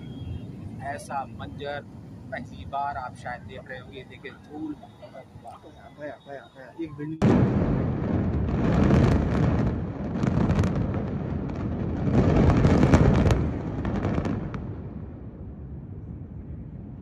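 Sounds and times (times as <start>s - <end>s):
explosive charges crackling: 7.2s - 15.3s
buildings collapsing rumble: 7.2s - 17.0s.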